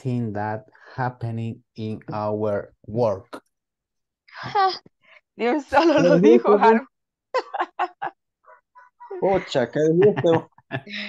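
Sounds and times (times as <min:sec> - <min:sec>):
woman laughing: 0:05.8 - 0:06.7, 0:07.4 - 0:08.2, 0:09.1 - 0:11.0.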